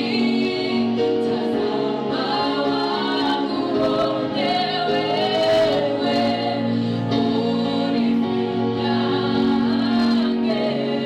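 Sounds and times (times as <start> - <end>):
women singing gospel song: 0.0 - 11.0.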